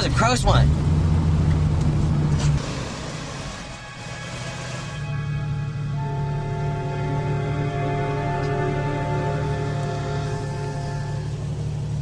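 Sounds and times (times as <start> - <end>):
moving car rumble: 0.0 - 12.0.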